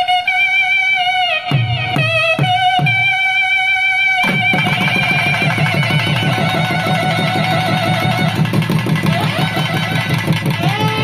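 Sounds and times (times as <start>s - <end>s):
double-reed wind instrument melody: 0.0s - 11.0s
rapid dense drumming: 4.2s - 11.0s.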